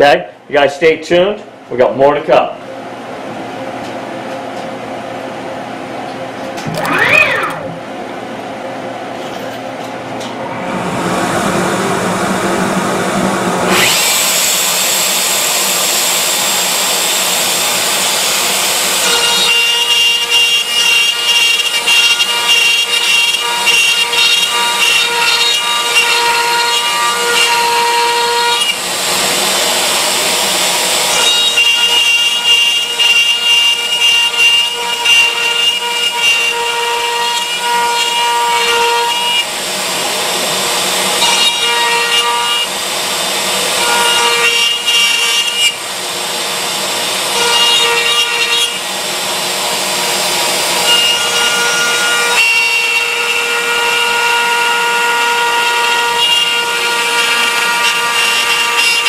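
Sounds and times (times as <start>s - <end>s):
router spindle whining: 6.6s - 7.8s, 10.4s - 59.0s
bit cutting wood: 13.6s - 39.5s, 49.8s - 59.0s.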